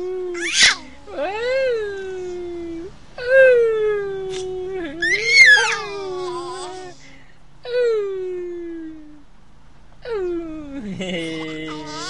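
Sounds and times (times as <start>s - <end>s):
baby squealing with laughter: 0.4s - 0.9s, 5.0s - 6.8s, 11.3s - 12.0s.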